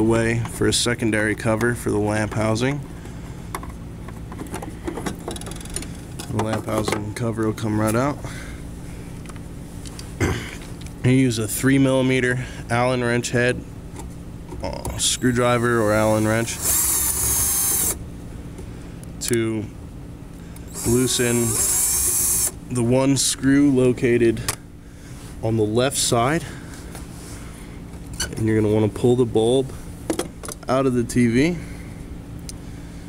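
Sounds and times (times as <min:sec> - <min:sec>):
cordless drill motor whine: 0:15.2 - 0:18.0, 0:20.6 - 0:22.6.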